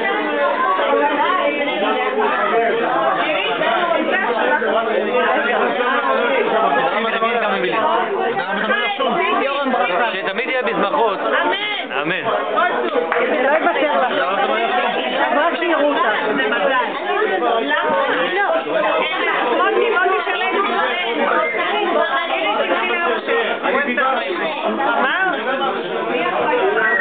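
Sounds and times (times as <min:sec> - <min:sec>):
party chatter: 0:00.0 - 0:27.0.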